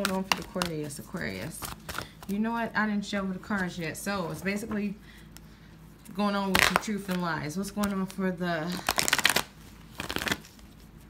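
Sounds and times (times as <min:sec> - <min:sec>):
cards riffle-shuffled: 0:00.0 - 0:02.4, 0:08.8 - 0:11.0.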